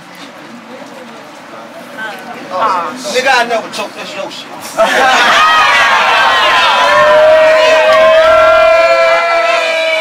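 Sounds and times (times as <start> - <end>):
crowd hollering: 4.8 - 10.0
long high shout: 4.8 - 10.0.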